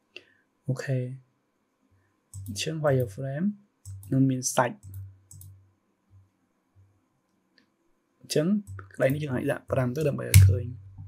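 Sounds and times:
low electrical hum: 0.4 - 11.0
computer mouse click: 2.3 - 3.1, 3.8 - 4.2, 4.8 - 5.6.

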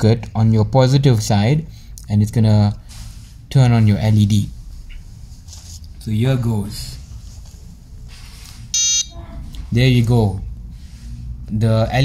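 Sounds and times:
short electronic beep: 8.7 - 9.1.

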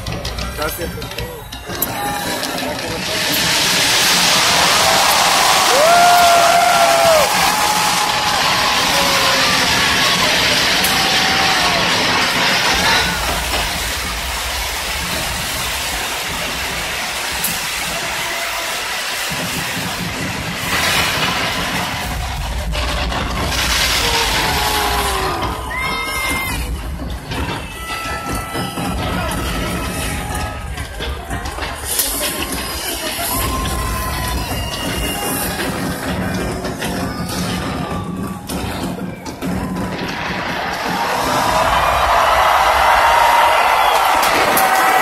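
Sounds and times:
crowd cheering and whooping: 1.7 - 31.4, 32.2 - 45.0.

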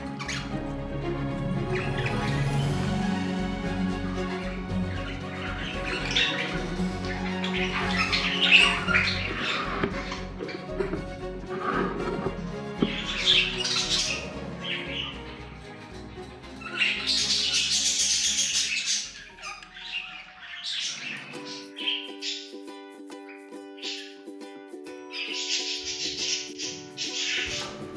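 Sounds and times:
budgerigars squawking and chattering: 0.0 - 0.8, 1.5 - 22.6, 23.3 - 24.2, 25.0 - 27.9
background music: 0.0 - 27.9.

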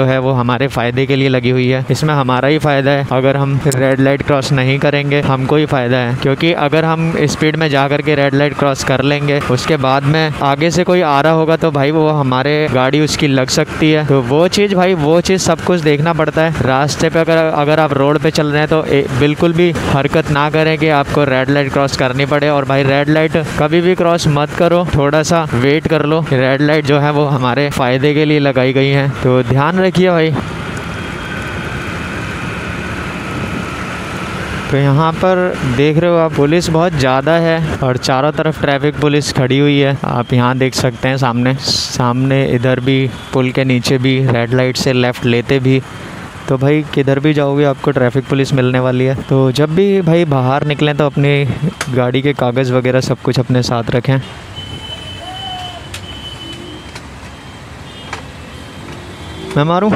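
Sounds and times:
road and traffic noise: 0.0 - 59.9
vehicle engines idling: 0.0 - 59.9
faint high beep: 54.6 - 59.8.

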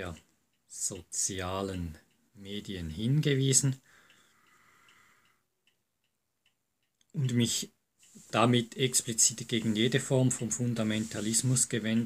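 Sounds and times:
faint light ticking: 0.0 - 12.0.

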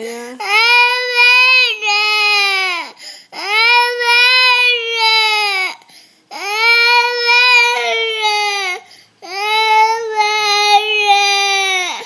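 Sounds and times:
toddler crying in wails: 0.5 - 12.0.

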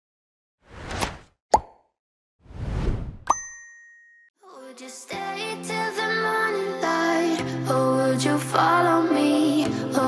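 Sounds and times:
sharp plop: 1.5 - 1.9
high bell-like ding: 3.3 - 4.3.

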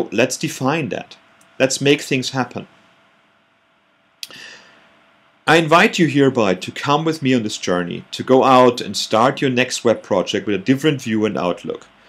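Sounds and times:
person breathing in: 4.2 - 4.9.

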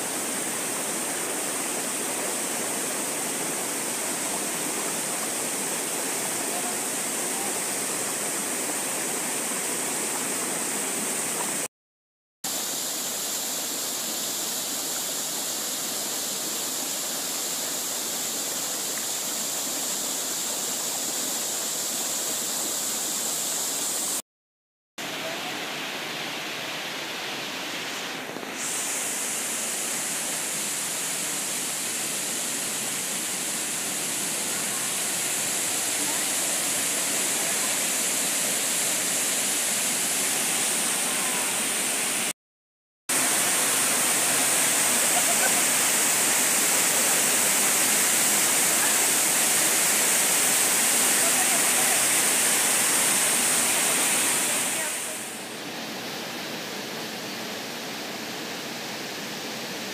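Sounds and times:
waterfall rushing: 0.0 - 11.7, 25.0 - 42.4, 43.1 - 59.9.

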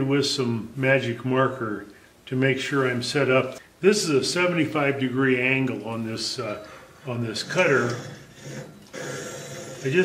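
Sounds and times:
man speaking: 0.0 - 8.2
grinder wheel rubbing scrape: 7.4 - 10.0.

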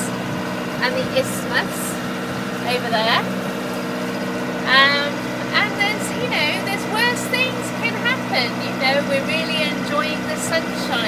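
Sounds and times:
boat engine droning: 0.0 - 11.0
woman's voice: 0.8 - 2.0, 2.6 - 3.3, 4.6 - 11.0.

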